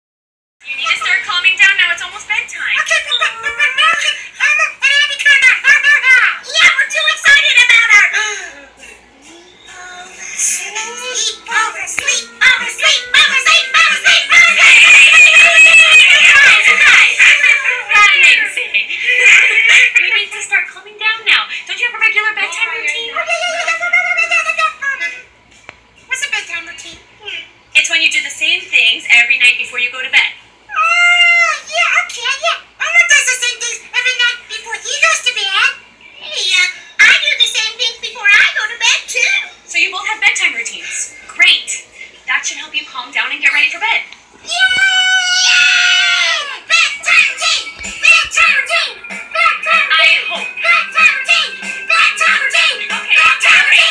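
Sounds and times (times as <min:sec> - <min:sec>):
high-pitched giggling: 0:13.5 - 0:18.0, 0:18.8 - 0:20.3.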